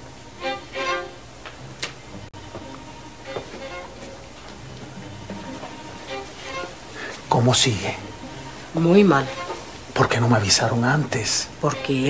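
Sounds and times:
violin melody: 0.0s - 12.0s.

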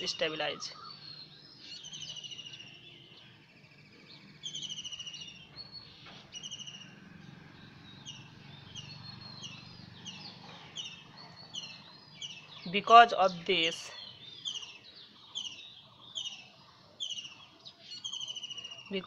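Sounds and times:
bird trilling: 0.0s - 2.8s, 6.3s - 19.0s.

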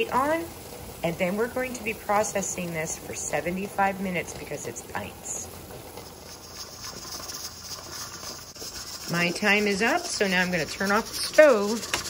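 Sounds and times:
steam hissing from pressure canner: 0.0s - 12.0s.

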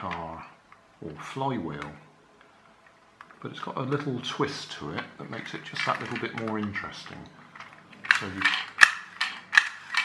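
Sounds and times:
toy car flywheel whirring: 5.3s - 10.0s.

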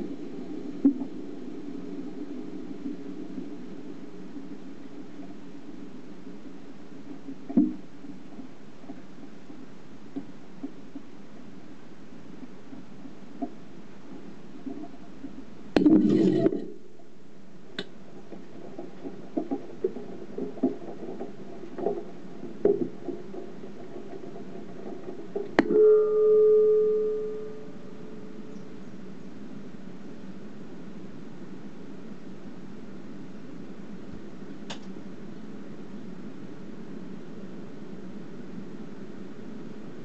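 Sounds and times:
steady low rush: 0.0s - 10.1s, 22.2s - 40.0s
steady low hum inside rocket: 0.0s - 40.0s.

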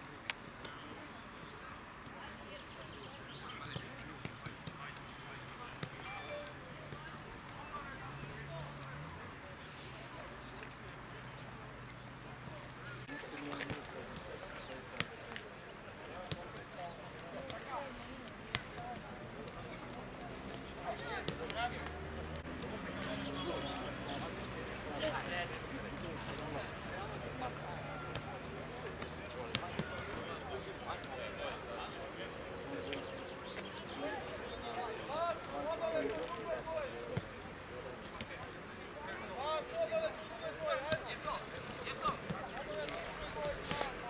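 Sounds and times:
voices calling out: 0.1s - 44.0s
faint shouts of players: 12.4s - 44.0s.

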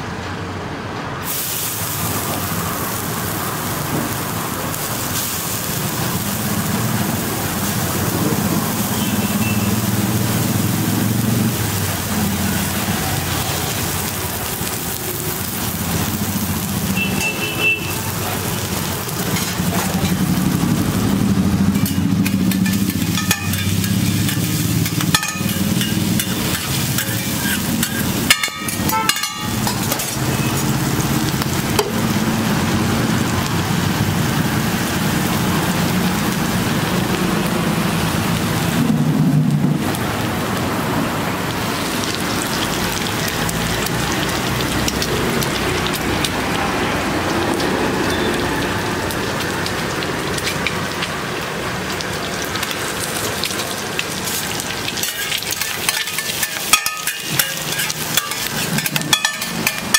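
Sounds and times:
food sizzling on griddle: 1.2s - 59.9s.

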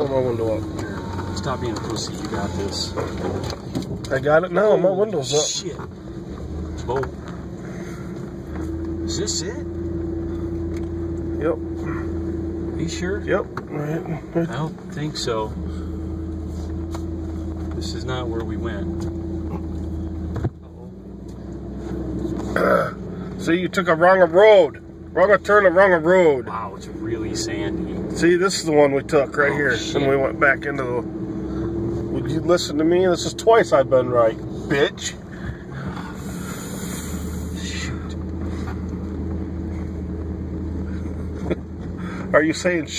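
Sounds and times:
vehicle engine running: 0.0s - 42.9s.

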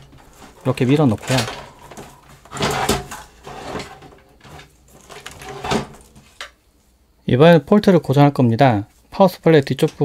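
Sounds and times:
power supply scraping inside computer case: 0.2s - 6.4s.

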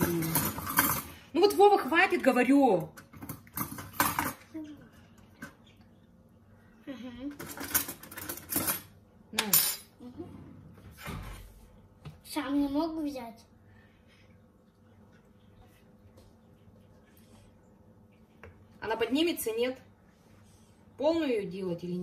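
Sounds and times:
utensils clinking against dishes: 0.0s - 1.8s, 7.3s - 10.0s.

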